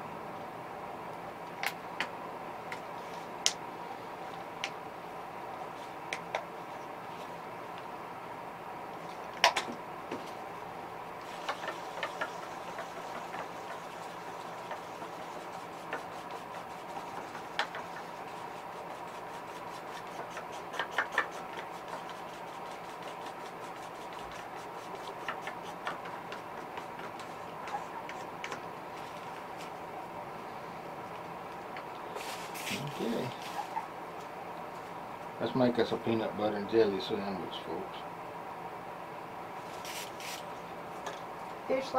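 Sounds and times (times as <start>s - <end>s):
steady background hum: 0.0s - 41.9s
brush and bottle clicks and taps: 11.4s - 13.8s, 15.8s - 18.1s, 19.8s - 28.6s.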